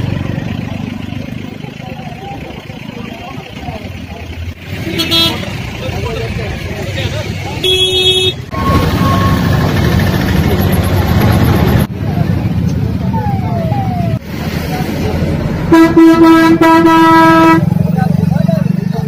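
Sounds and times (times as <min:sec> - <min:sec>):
loud vehicle engine: 0:00.0 - 0:19.0
roadside traffic: 0:00.0 - 0:19.0
crowd voices: 0:00.9 - 0:15.7
vehicle horn toots: 0:04.8 - 0:05.6, 0:07.6 - 0:09.4, 0:15.7 - 0:17.7.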